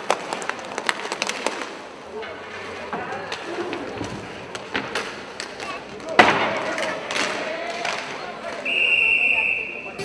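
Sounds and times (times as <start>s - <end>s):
sticks clacking on puck and floor: 0.0s - 8.7s
hall background noise: 0.0s - 10.0s.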